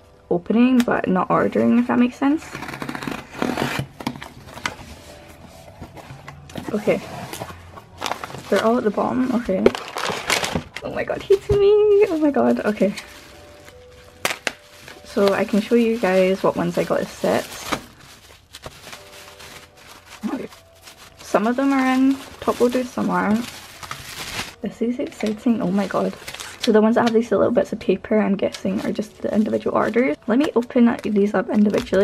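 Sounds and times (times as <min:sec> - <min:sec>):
bubble wrap and plastic crinkling: 0:01.4 - 0:32.0
cardboard scraping and rustling: 0:02.5 - 0:24.6.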